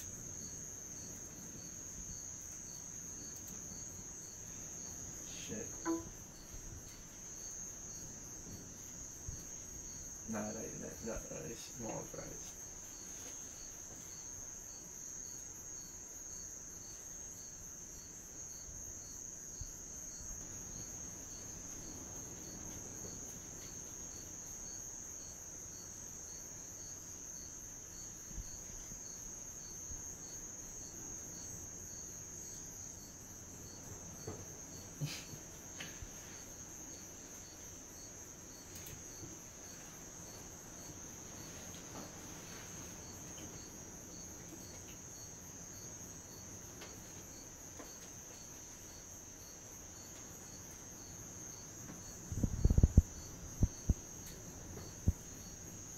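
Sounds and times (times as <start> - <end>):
cricket chirps: 0.0 - 55.9
cricket trilling: 0.0 - 55.9.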